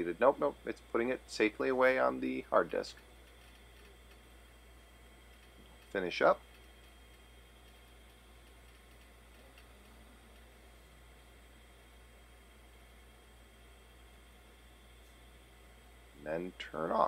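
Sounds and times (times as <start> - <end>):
low hum: 0.0 - 17.0.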